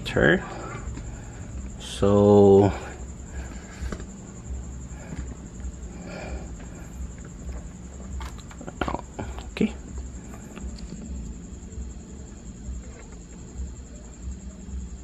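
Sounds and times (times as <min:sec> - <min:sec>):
faint high whine: 0:00.0 - 0:15.0
steady low hum: 0:00.0 - 0:15.0
handling noise: 0:03.4 - 0:11.4.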